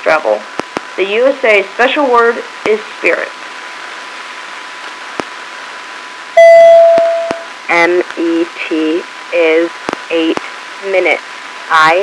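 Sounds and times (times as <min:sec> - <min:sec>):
radio receiver hiss: 0:00.0 - 0:12.0
loud beep: 0:06.4 - 0:07.5.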